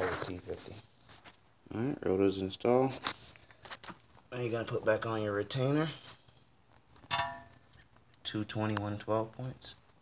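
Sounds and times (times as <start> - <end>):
sharp metallic clink: 7.1 - 7.6.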